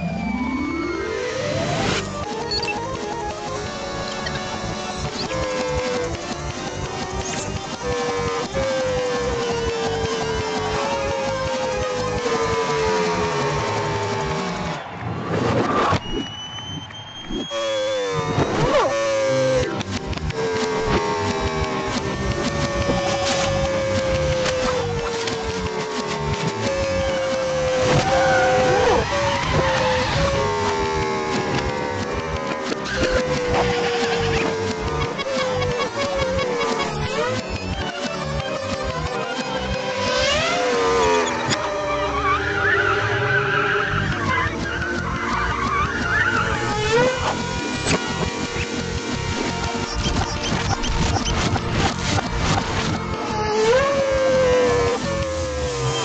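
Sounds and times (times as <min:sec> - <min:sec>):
motor sound effect sliding down: 0:00.3 - 0:16.2, 0:17.2 - 0:56.0
squealing glides: 0:03.7 - 0:51.7, 0:53.0 - 0:56.0
cartoon music: 0:17.5 - 0:52.5.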